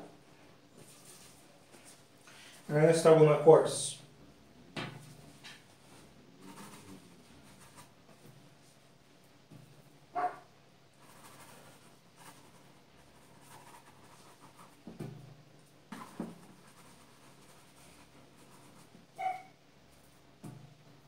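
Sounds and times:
brush scrubbing on canvas: 0.8 - 2.0, 5.8 - 8.0, 11.0 - 14.8.

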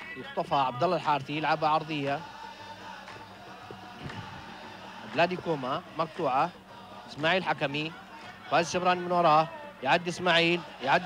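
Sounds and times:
stadium crowd background: 0.0 - 11.0.

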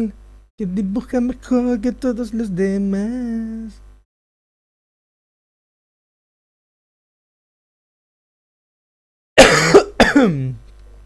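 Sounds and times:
person clearing throat: 9.4 - 10.6.

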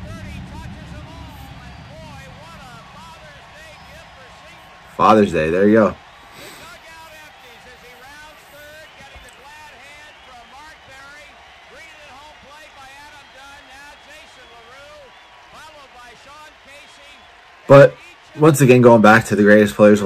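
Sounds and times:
faint voices from tv: 0.0 - 20.0.

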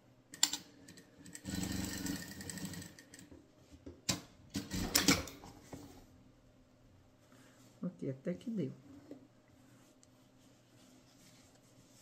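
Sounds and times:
sewing machine stitching: 1.4 - 3.1
fabric rustling: 8.8 - 12.0.

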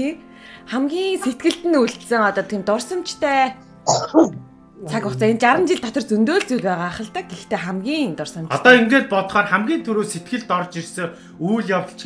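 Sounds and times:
people talking: 0.7 - 9.0
person coughing: 3.9 - 4.4.

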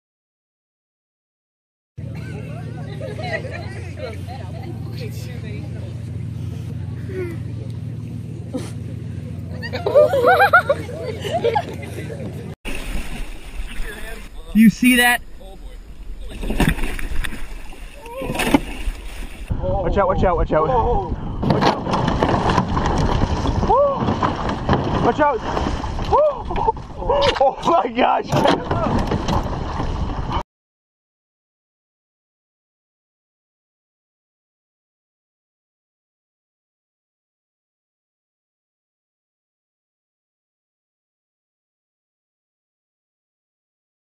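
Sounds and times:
steady low rumble: 2.0 - 21.5
people talking: 2.2 - 12.5, 13.7 - 16.6, 27.0 - 29.0
water splashing beside canoe: 12.7 - 14.5, 15.9 - 19.5, 21.5 - 30.4
wind and water rush: 12.7 - 27.8, 28.4 - 30.4
man shouting: 14.6 - 15.2.

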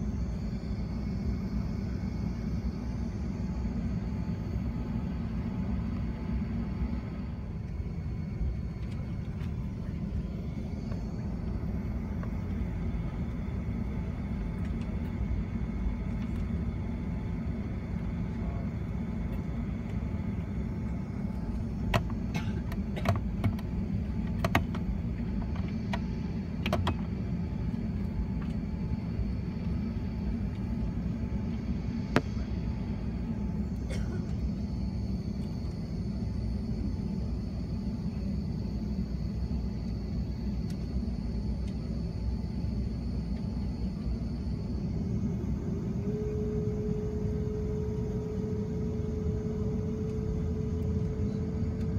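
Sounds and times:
aircraft engines low rumble: 0.0 - 51.9
faint high whine: 0.0 - 51.9.

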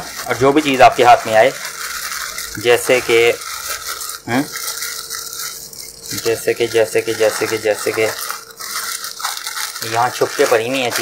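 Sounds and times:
plastic bag rustling: 0.0 - 11.0.

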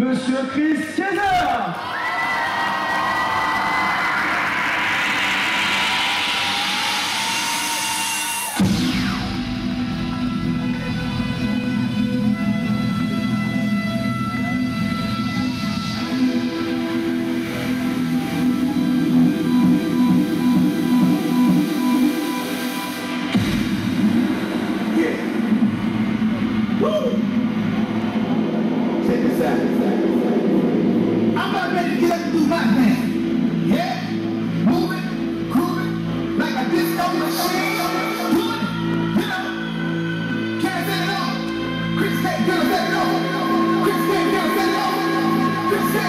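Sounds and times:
electronic dance music: 0.0 - 46.0
rising noise sweep: 3.0 - 10.6, 17.0 - 33.7
bass line: 3.2 - 46.0.

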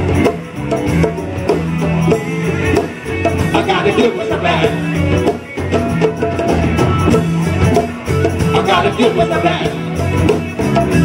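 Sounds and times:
drums: 0.0 - 11.0
live band playing funk: 0.0 - 11.0
steady bass line: 0.0 - 11.0.

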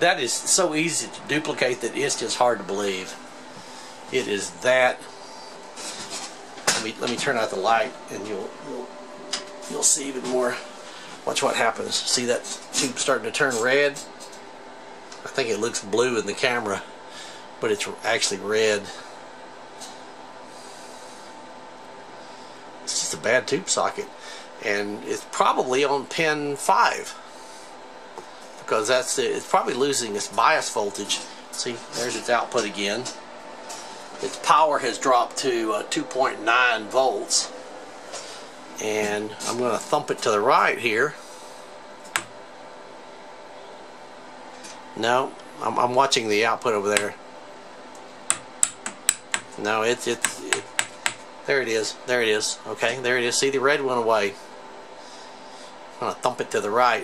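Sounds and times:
steady amplifier hiss: 0.0 - 57.0.

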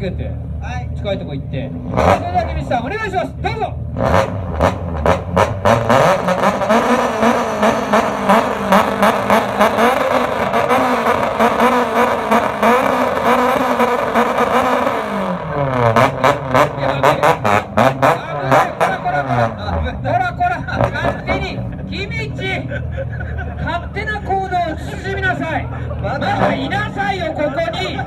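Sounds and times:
car engine revving: 0.0 - 28.0.

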